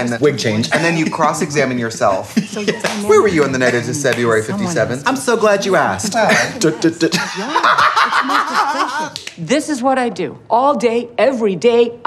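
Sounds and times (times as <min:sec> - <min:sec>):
people laughing loudly: 0:00.7 - 0:04.4, 0:05.9 - 0:09.2.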